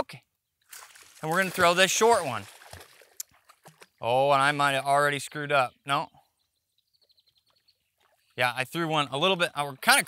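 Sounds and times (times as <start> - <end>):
high twittering bird call: 4.8 - 8.5.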